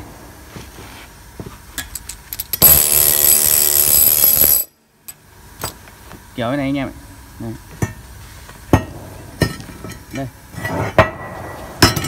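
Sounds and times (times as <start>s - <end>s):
workshop machine whining: 0.0s - 7.2s.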